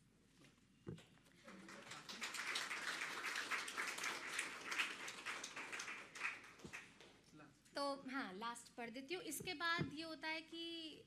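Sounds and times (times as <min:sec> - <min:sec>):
audience applauding: 0:01.4 - 0:07.0.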